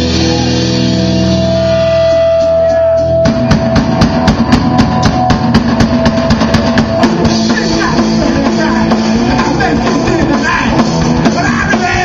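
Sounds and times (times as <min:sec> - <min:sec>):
electric guitar and bass chord: 0:00.0 - 0:12.0
fast drum beat: 0:03.2 - 0:12.0.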